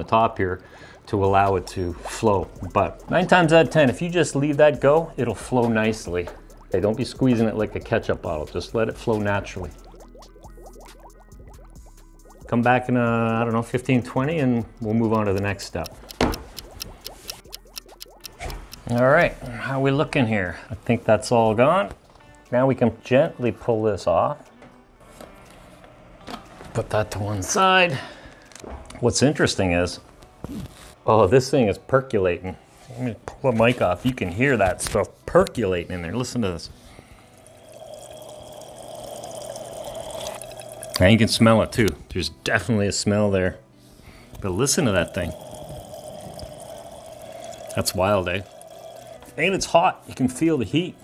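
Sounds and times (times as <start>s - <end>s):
liquid gurgling into battery: 0.6s - 3.5s, 5.0s - 12.6s, 14.8s - 19.1s, 37.4s - 42.0s, 44.8s - 49.5s
faint ticks: 14.8s - 19.2s.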